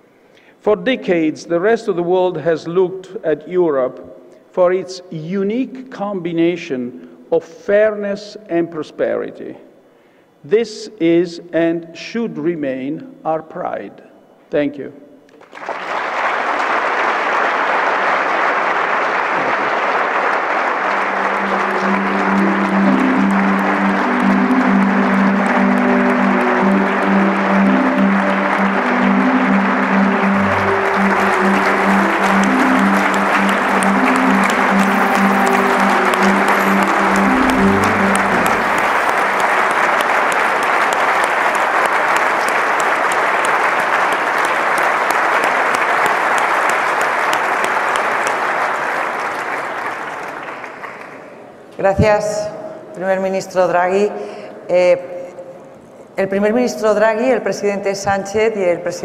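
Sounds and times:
audience applauding: 15.4 - 51.6
instrumental background music: 20.9 - 41.2.

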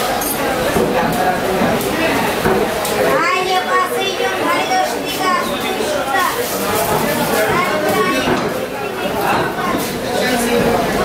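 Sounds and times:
hubbub of many voices: 0.0 - 11.0.

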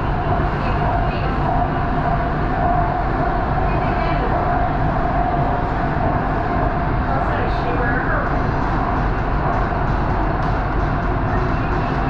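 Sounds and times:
steady hum: 0.0 - 12.0
train rolling rumble: 0.0 - 12.0.

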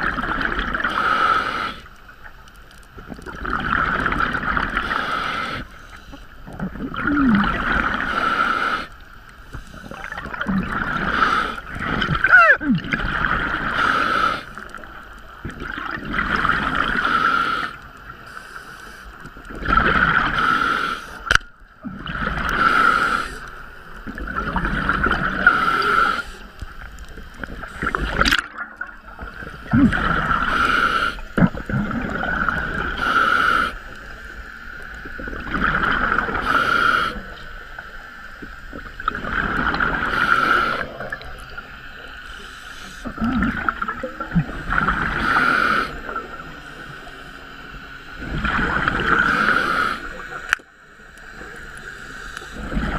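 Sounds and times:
diver breathing through regulator: 0.8 - 2.0, 4.6 - 6.2, 7.1 - 12.2, 13.5 - 14.8, 16.7 - 19.2, 20.2 - 21.3, 22.1 - 23.6, 25.2 - 26.5, 29.6 - 31.6, 32.2 - 34.1, 36.2 - 37.4, 39.8 - 41.2, 42.2 - 43.8, 45.0 - 47.1, 49.0 - 50.4.

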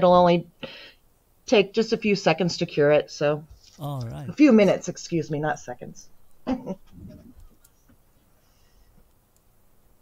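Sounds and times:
faint low murmur: 3.5 - 7.7
person's brief voiced sound: 3.8 - 4.4.

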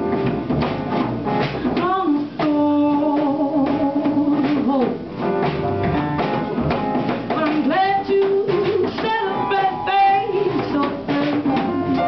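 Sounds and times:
live jazz band: 0.0 - 12.0
woman singing jazz: 1.4 - 6.3, 7.3 - 12.0.

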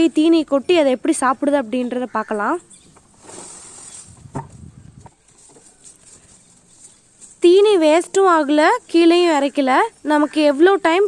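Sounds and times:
fodder rustling: 2.7 - 8.4.

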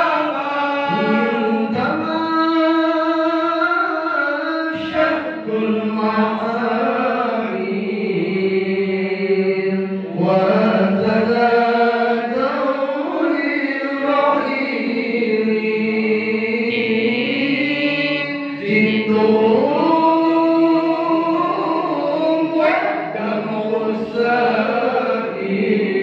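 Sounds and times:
man chanting into a microphone: 0.0 - 26.0.

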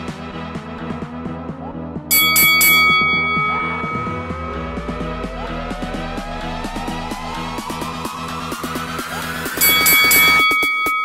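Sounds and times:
background music with steady beat: 0.0 - 11.0
bell-like chime dinging: 2.1 - 5.2, 9.6 - 11.0.

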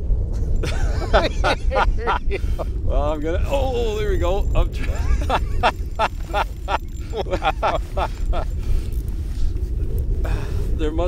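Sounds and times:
wind rumble on microphone: 0.0 - 11.0
man laughing: 0.6 - 8.8.

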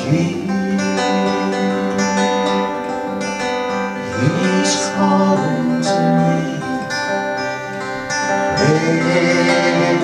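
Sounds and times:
strummed acoustic guitars: 0.0 - 10.0.

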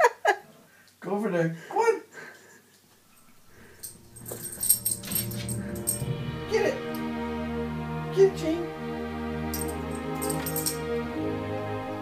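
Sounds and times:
music: 3.2 - 12.0.

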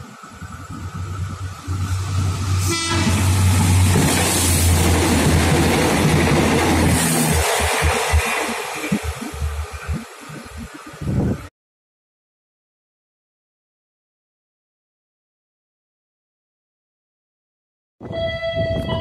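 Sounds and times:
train cars clacking: 0.0 - 11.1
train wheels roaring on rail: 0.0 - 11.5.

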